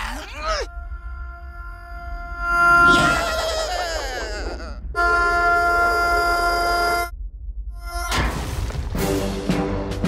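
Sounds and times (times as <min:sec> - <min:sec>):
sustained horn-like chord: 0:05.0 - 0:07.1.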